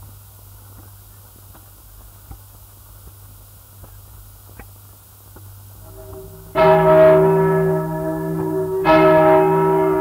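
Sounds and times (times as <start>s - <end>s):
record hum and clicking: 0.0s - 7.2s
large church bell tolling: 5.8s - 10.0s.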